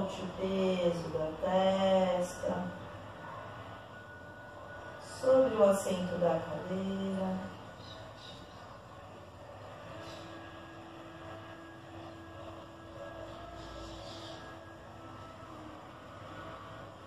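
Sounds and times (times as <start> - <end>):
faint steady hum: 0.0 - 17.0.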